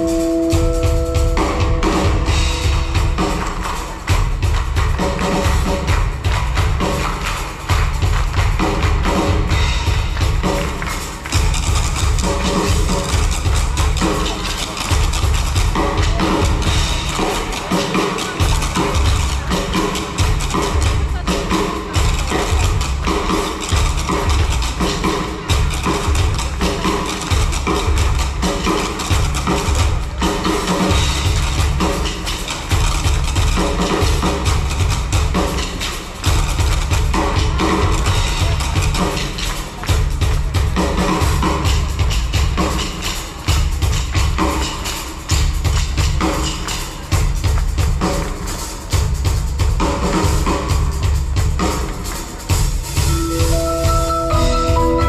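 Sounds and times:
held instrument notes: 0.0 - 5.1, 53.0 - 55.0
heavy bass line: 0.0 - 5.3
drums: 0.0 - 55.0.

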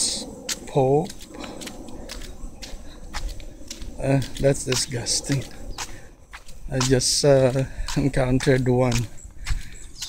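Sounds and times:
footsteps of person walking: 0.3 - 10.0.

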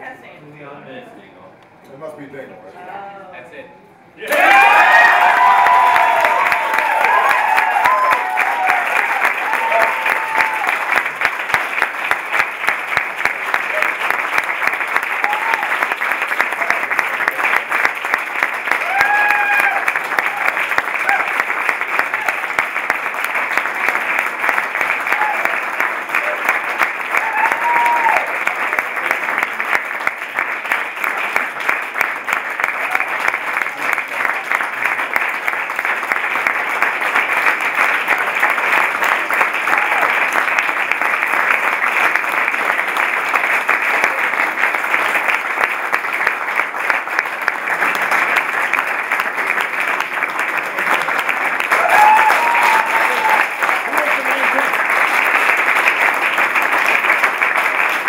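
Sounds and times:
people cheering and shouting: 4.2 - 10.8, 15.1 - 15.8, 18.8 - 21.4, 25.0 - 25.6, 27.1 - 28.4, 51.7 - 54.1
crowd applauding: 4.2 - 58.0.

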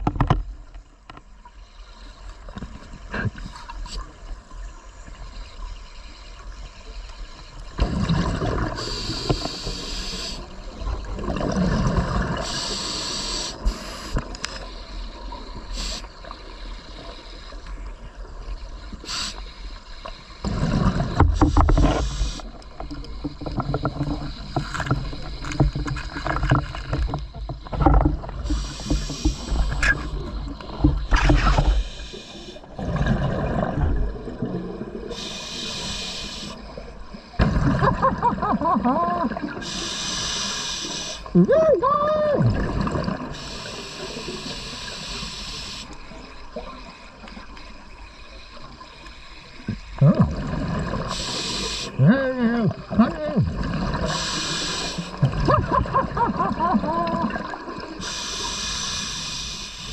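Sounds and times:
small clicks and knocks: 0.0 - 1.3
underwater exhaled bubbles: 2.0 - 59.9
scuba regulator hissing: 12.4 - 14.2, 19.0 - 19.6, 21.4 - 22.6, 28.4 - 30.4, 31.1 - 32.6, 35.1 - 36.6, 39.6 - 41.3, 43.4 - 46.0, 51.1 - 52.1, 54.0 - 55.2, 58.0 - 59.9
water washing: 49.7 - 58.6.

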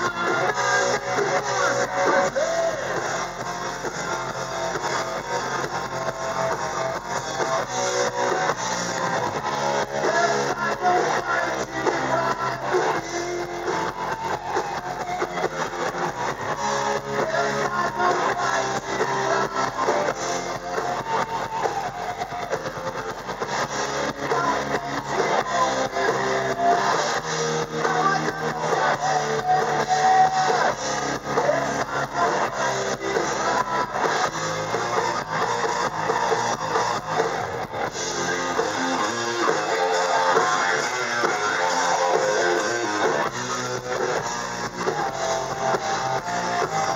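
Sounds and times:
bass guitar: 0.0 - 46.9
drum kit beat: 0.0 - 46.9
electric guitars: 0.0 - 46.9
live hard rock band: 0.0 - 46.9.

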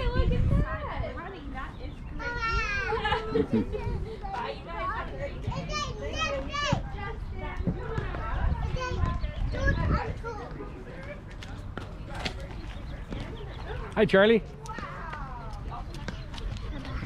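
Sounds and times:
indistinct talk of several people: 0.0 - 17.0
young child's high voice: 2.2 - 3.0.

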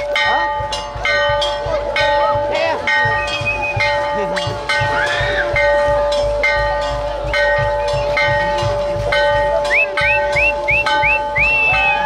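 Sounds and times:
chiming notes: 0.0 - 12.0
festival band music: 0.0 - 12.0.

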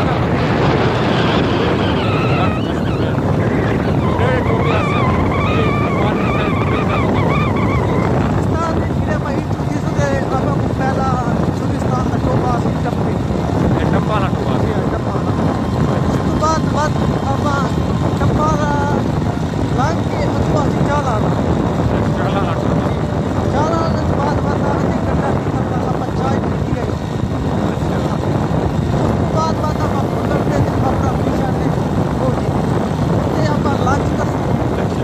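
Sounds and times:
man's voice: 0.0 - 15.4, 16.2 - 28.4, 29.3 - 35.0
wind buffeting microphone: 0.0 - 35.0.

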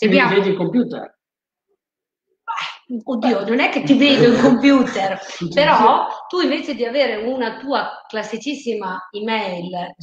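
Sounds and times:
person speaking: 0.0 - 1.0, 3.0 - 6.3.

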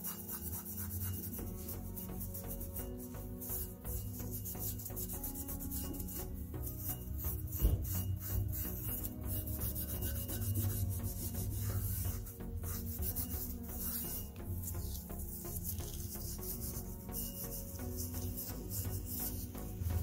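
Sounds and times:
abrasive pad scrubbing metal: 0.0 - 20.0
background music: 0.0 - 20.0.

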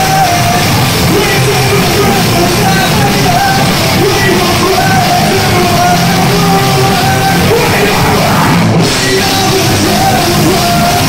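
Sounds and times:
drum kit: 0.0 - 11.0
electric guitar: 0.0 - 11.0
man shouting vocals: 0.0 - 11.0.

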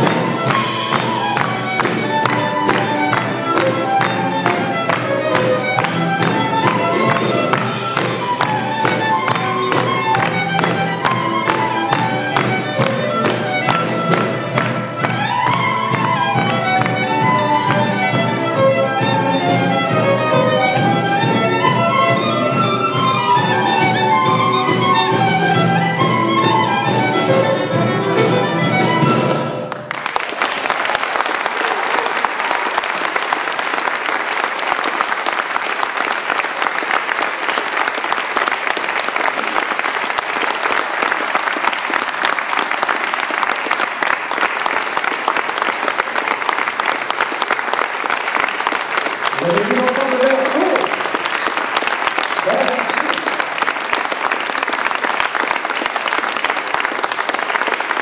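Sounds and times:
string ensemble playing folk piece: 0.0 - 30.4, 31.6 - 58.0
audience applauding: 0.0 - 58.0.

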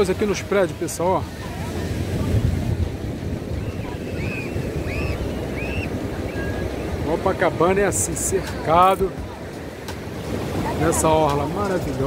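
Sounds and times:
surf breaking on a beach: 0.0 - 12.0
wind buffeting the microphone: 0.0 - 12.0.

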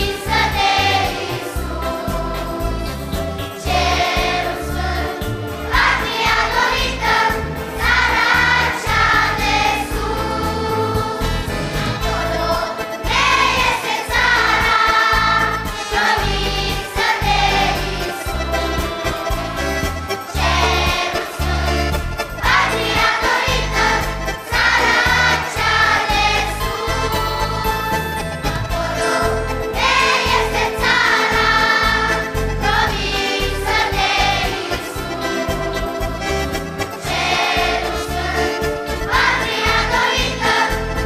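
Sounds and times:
children's choir singing a hymn: 0.0 - 41.0
instrumental accompaniment: 0.0 - 41.0.

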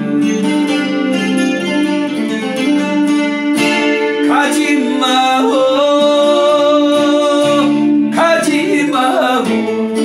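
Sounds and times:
acoustic guitar strumming: 0.0 - 10.0
man singing: 4.1 - 10.0.

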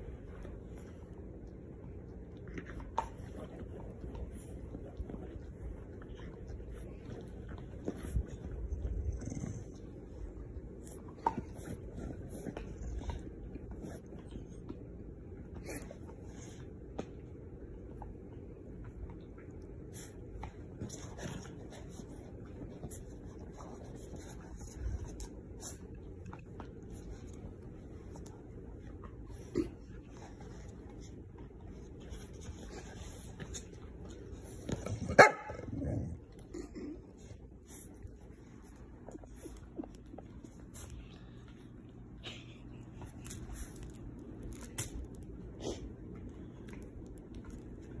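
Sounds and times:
dog barking: 35.1 - 35.7.

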